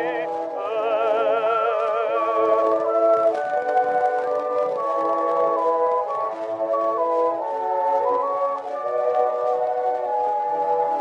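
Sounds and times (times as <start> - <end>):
old gramophone record music: 0.0 - 11.0
record surface crackle: 0.0 - 11.0.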